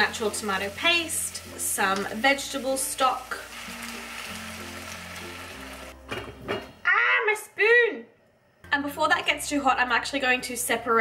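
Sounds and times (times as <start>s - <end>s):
vegetables sizzling in a pan: 0.0s - 6.0s.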